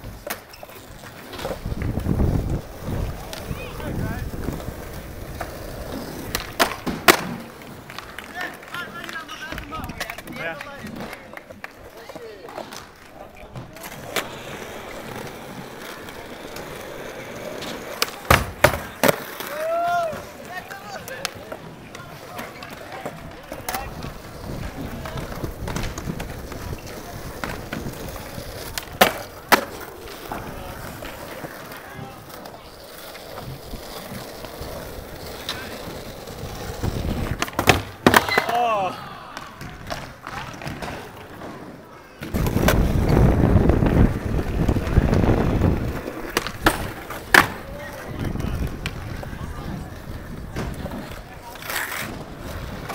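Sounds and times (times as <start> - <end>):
skateboard clacks popping and landing: 0.0 - 38.7, 39.3 - 52.9
skateboard wheels rolling on concrete: 0.0 - 52.9
onlookers shouting: 19.4 - 20.3.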